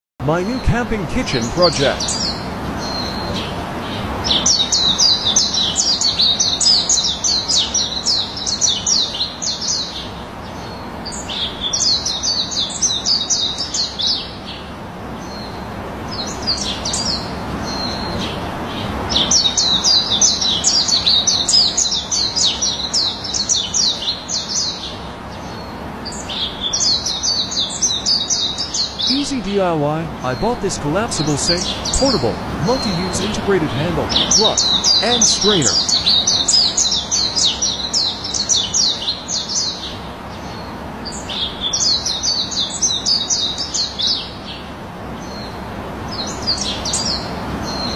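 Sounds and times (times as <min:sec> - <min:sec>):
songbird singing rapid high notes: 0:00.2 - 0:03.5, 0:27.8 - 0:38.5.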